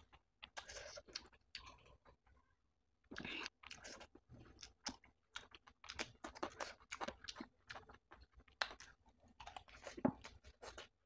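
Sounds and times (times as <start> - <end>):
wet chewing and crunching: 0.0 - 11.0.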